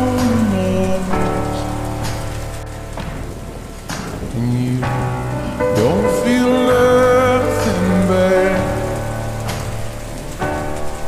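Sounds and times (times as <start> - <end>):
rain: 0.0 - 11.0
slowed reverb-heavy song: 0.0 - 11.0.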